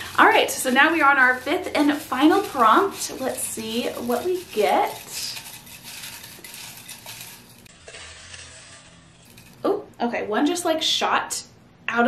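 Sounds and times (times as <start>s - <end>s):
paper slips rustling in glass bowl: 0.0s - 9.6s.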